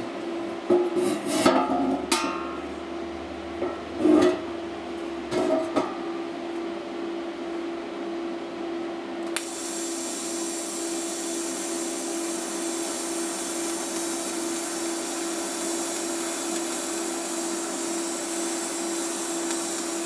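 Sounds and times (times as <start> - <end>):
constant low hum: 0.0 - 9.4
welding arc click: 9.2 - 20.0
welding arc hissing: 9.4 - 20.0.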